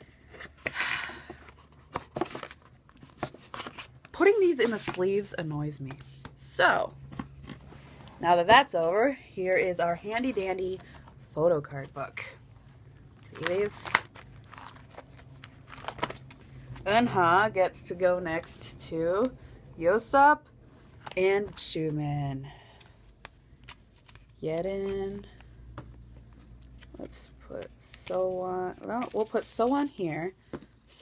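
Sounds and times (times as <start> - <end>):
plastic card sleeves crinkling: 12.9 - 16.8, 22.7 - 29.8
plastic sleeve rustling: 13.0 - 16.8.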